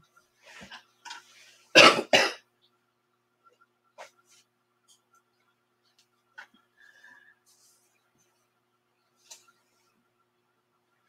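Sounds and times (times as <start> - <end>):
person coughing: 1.7 - 2.4.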